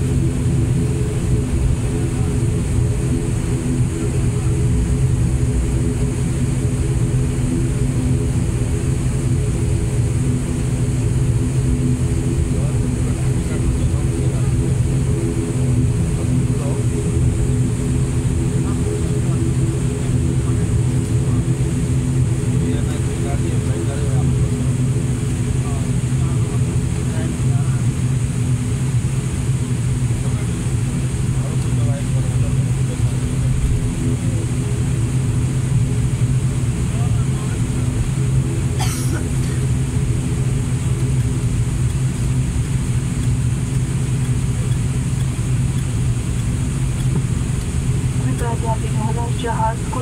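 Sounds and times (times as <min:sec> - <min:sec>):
turboprop engine droning: 0:00.0 - 0:50.0.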